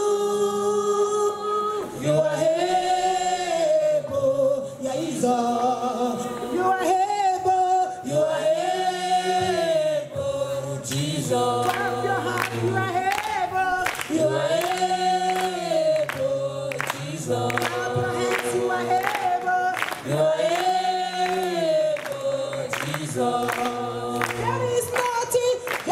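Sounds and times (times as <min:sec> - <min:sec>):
gospel group singing: 0:00.0 - 0:25.9.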